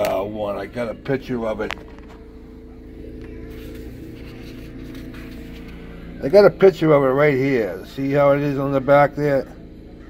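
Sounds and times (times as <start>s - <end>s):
machine humming: 0.0s - 10.0s.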